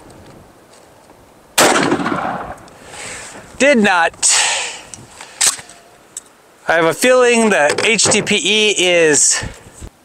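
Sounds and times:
sharp crack: 1.6s - 2.8s, 5.2s - 5.9s.

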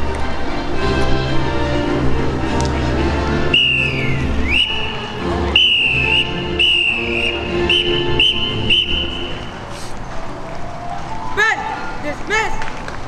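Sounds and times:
background music: 0.0s - 13.0s
whistle blasts: 3.5s - 9.7s.

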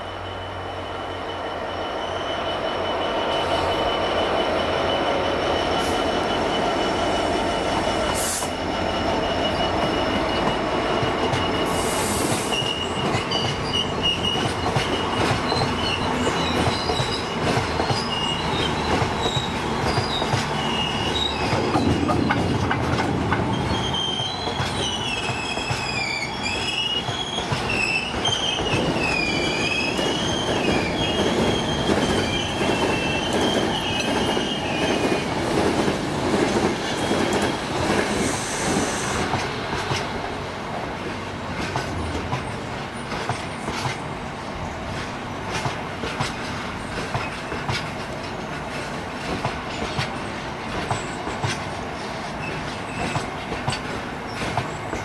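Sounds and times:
high-pitched wheel squeal: 0.0s - 22.0s, 23.4s - 35.2s
diesel locomotive passing: 0.0s - 55.0s
train wheels clattering on rail: 3.4s - 55.0s.

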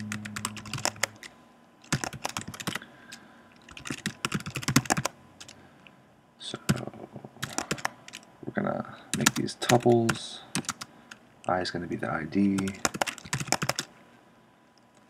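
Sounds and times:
typing on computer keyboard: 0.0s - 2.8s, 3.6s - 5.6s, 7.4s - 8.2s, 9.1s - 11.2s, 12.6s - 13.9s.

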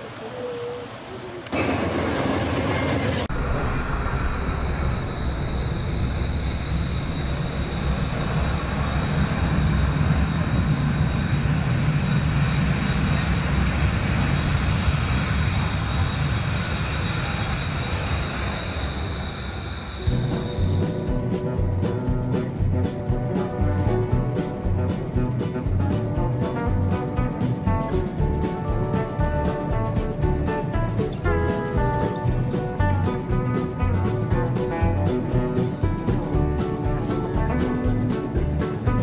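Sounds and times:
train cars rumbling over track: 0.0s - 3.3s, 6.4s - 39.0s.

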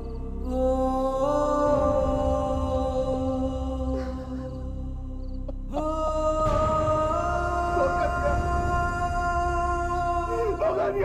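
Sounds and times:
music of slow held notes: 0.0s - 11.0s.

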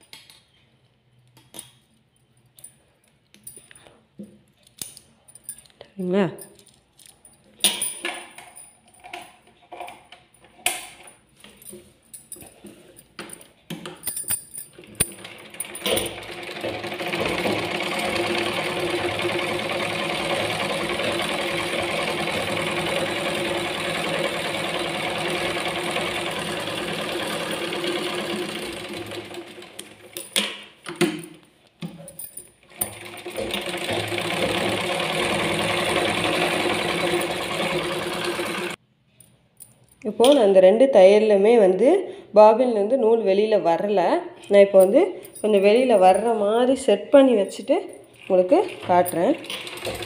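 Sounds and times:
sewing machine clicks: 15.1s - 30.1s, 32.7s - 38.8s, 48.7s - 50.0s
sewing machine stitching: 15.1s - 30.1s, 32.7s - 38.8s, 48.2s - 50.0s.

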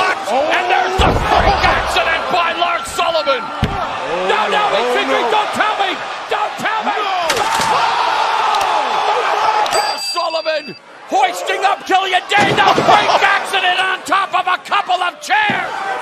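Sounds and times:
arena crowd yelling: 0.0s - 16.0s.

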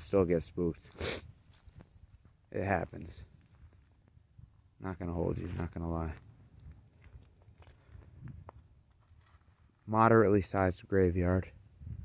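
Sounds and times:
faint footsteps: 0.8s - 9.9s.

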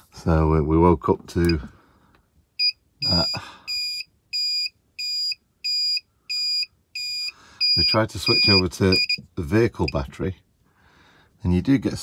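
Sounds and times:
high-pitched alarm beeping: 2.6s - 9.2s.

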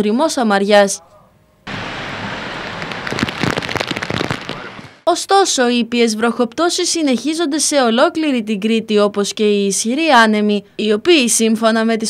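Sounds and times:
wind: 0.0s - 12.0s
rough sea washing against quay: 1.7s - 5.1s.

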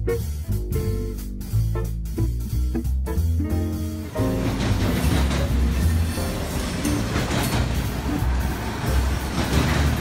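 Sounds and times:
background music: 0.0s - 10.0s
freight train wheels on rails: 4.0s - 10.0s.

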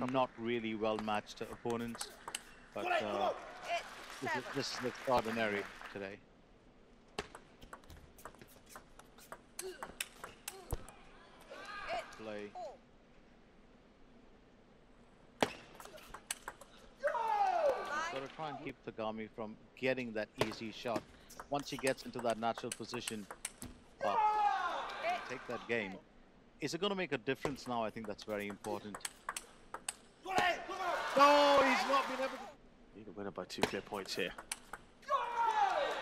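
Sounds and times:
quiet arena hush: 0.0s - 36.0s
table tennis ball clicks: 1.7s - 2.5s, 7.2s - 10.9s, 15.8s - 16.7s, 21.4s - 23.8s, 27.4s - 30.1s, 33.6s - 34.9s.

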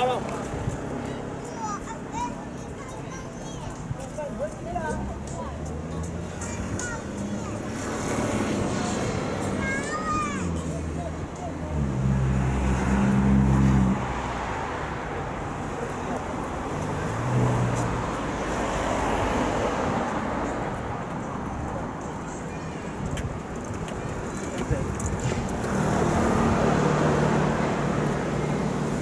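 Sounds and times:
passers-by talking: 0.0s - 29.0s
street traffic: 0.0s - 29.0s
vehicle engine droning: 4.9s - 20.6s.

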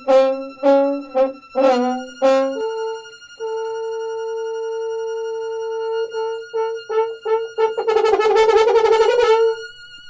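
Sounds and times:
held brass note: 0.0s - 10.0s.

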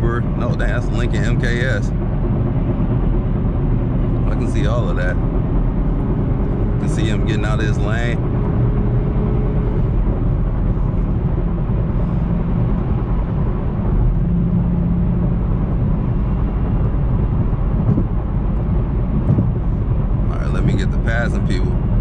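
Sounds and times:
car engine droning: 0.0s - 22.0s
tyre and road noise: 0.0s - 22.0s.

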